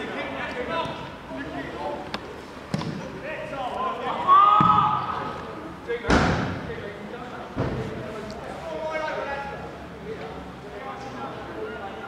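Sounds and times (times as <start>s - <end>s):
players shouting: 3.4s - 5.4s.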